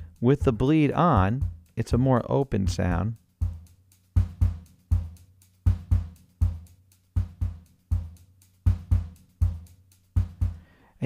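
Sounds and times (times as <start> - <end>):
hi-hat ticks: 0.0 - 11.0
kick drum hits: 3.4 - 9.6, 10.2 - 10.6.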